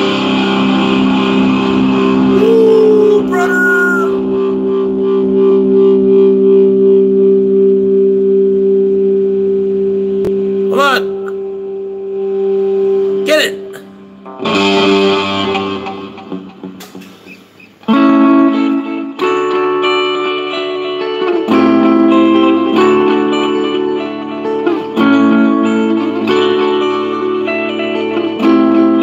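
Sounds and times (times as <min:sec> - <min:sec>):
scratchy guitar strum: 0:00.0 - 0:07.6, 0:10.3 - 0:29.0
electric guitar chord ringing: 0:00.0 - 0:29.0
gliding guitar notes: 0:00.0 - 0:29.0.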